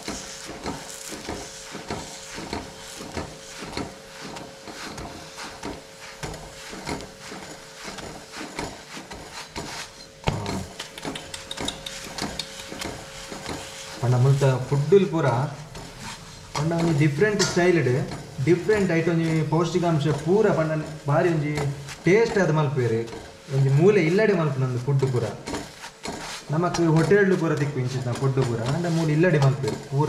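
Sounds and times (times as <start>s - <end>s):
wooden press scuffing on iron pan: 0.0s - 11.0s, 11.8s - 30.0s.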